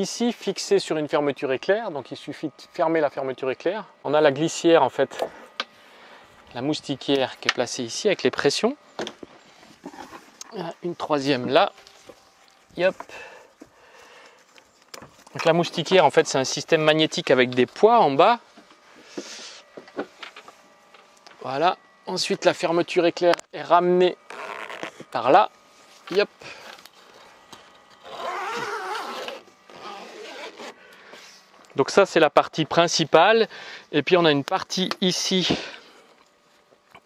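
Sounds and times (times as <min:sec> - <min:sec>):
zip being pulled: 0:24.3 - 0:25.0, 0:28.0 - 0:30.8.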